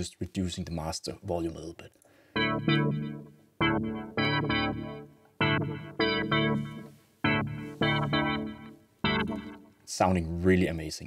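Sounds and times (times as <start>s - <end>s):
synth chord stabs with delay: 2.4s - 9.7s.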